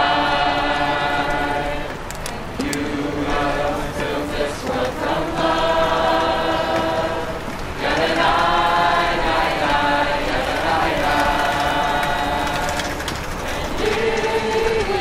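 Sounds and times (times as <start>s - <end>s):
group singing unaccompanied: 0.0s - 15.0s.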